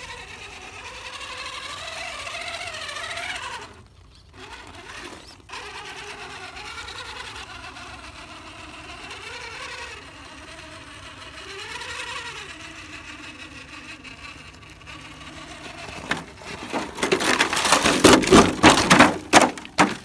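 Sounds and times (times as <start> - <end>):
rc car motor whining: 0.0 - 18.0.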